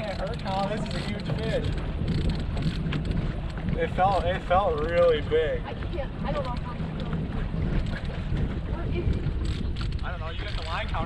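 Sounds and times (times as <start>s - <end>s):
boat motor rumbling: 0.0s - 11.0s
wind on microphone: 0.0s - 11.0s
faint clicks: 6.3s - 7.2s.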